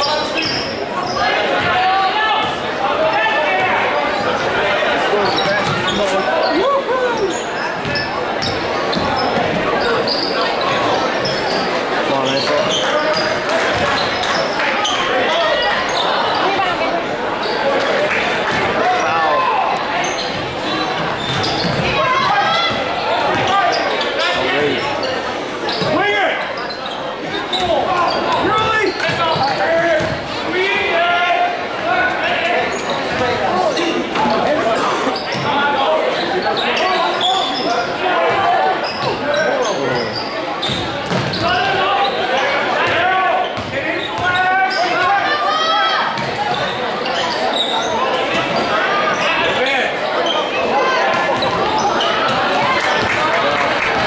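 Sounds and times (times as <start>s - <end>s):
spectators talking and calling out: 0.0s - 54.0s.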